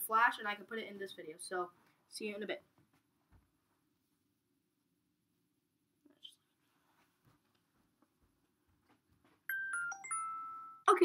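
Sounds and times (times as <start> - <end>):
electronic bell-like chime: 9.5 - 11.0.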